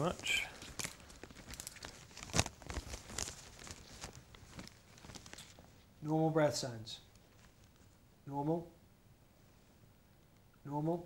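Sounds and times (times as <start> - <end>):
plastic apron crinkling: 0.0 - 5.8.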